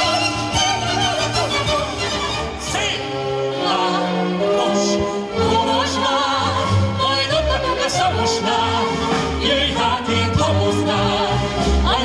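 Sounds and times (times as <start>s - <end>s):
man and woman singing duet: 1.5s - 12.0s.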